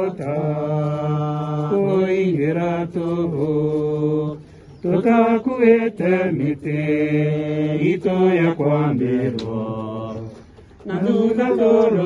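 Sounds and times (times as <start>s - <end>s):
person singing chant-like: 0.0s - 12.0s.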